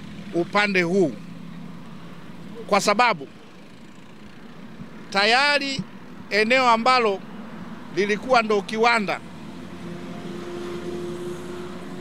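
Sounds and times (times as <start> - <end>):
vehicle engines humming: 0.0 - 12.0.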